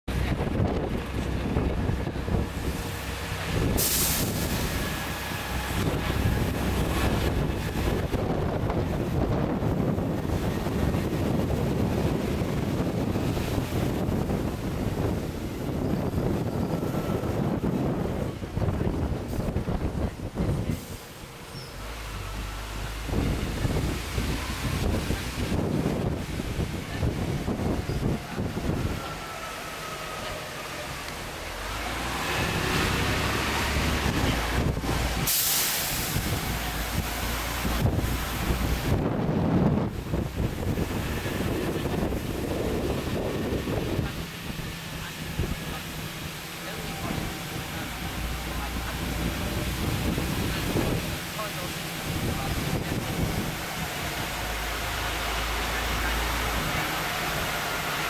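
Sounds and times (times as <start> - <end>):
bus engine and road rumble: 0.0 - 58.0
wind on microphone: 0.1 - 58.0
air-brake hiss: 3.7 - 5.2, 35.1 - 37.7.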